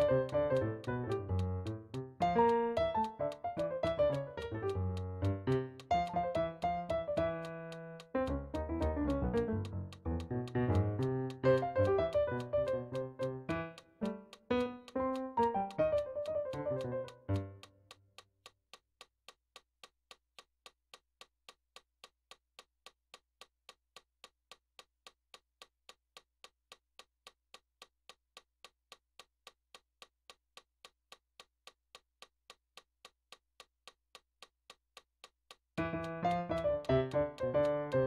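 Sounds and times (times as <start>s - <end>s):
metronome clicking: 0.0s - 18.6s, 28.6s - 38.0s.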